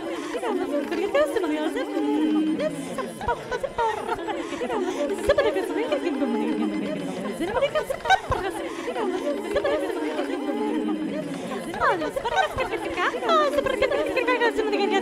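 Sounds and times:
babble of processed voices: 0.0 - 15.0.

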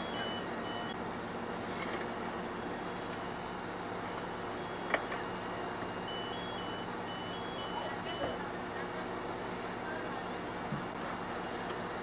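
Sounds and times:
faint two-tone electronic beeping: 0.0 - 1.0, 4.5 - 8.4
fire engine running: 0.0 - 12.0.

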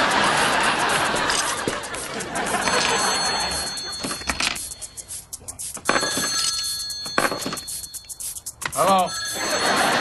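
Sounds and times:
studio audience laughing: 0.0 - 4.0, 9.4 - 10.0
high-pitched electronic tone: 2.6 - 9.8.

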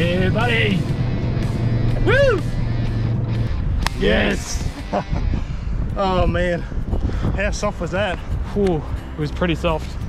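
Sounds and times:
engine humming inside cab: 0.0 - 5.0
man shouting: 2.0 - 2.5, 4.0 - 4.6.

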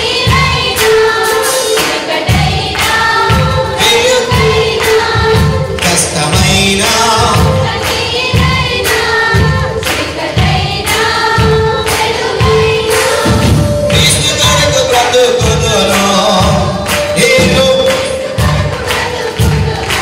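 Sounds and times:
group singing worship song: 0.0 - 20.0
live band with drum beat: 0.0 - 20.0.

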